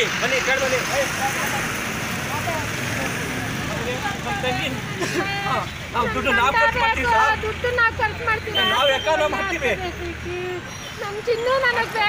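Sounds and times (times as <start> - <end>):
people talking: 0.0 - 12.0
vehicle rumble: 0.0 - 12.0.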